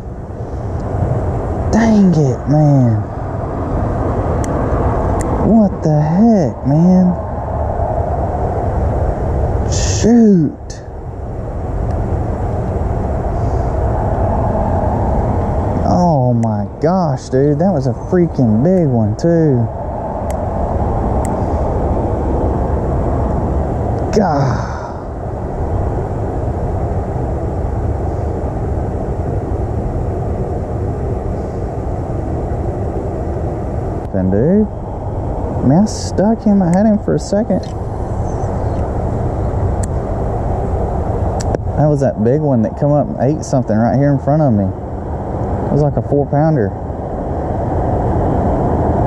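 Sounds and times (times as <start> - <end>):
wind buffeting microphone: 0.0 - 49.0
person exclaiming: 24.1 - 25.1.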